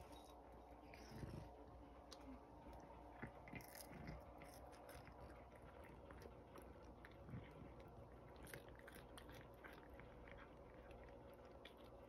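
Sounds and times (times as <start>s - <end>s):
cat chewing crunches: 0.0s - 12.0s.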